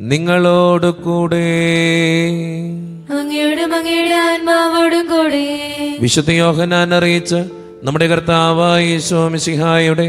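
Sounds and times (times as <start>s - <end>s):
man chanting: 0.0s - 3.0s, 6.0s - 10.0s.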